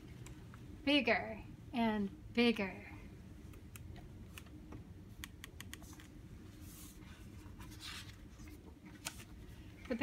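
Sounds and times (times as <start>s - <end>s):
page turning rustle: 6.7s - 9.4s.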